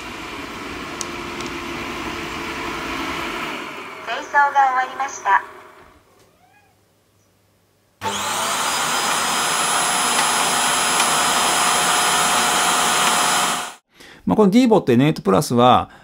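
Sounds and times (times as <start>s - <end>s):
vacuum suction motor whining: 0.0s - 6.0s, 8.0s - 13.8s.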